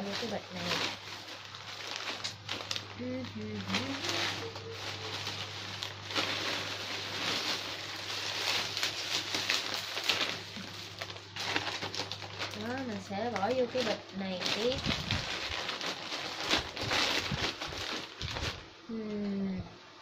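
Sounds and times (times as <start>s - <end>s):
plastic bags rustling: 0.0s - 18.9s.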